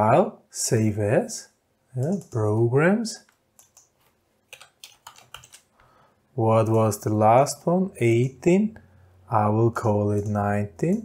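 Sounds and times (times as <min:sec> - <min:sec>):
faint keyboard typing: 0:02.0 - 0:08.4, 0:09.8 - 0:11.0.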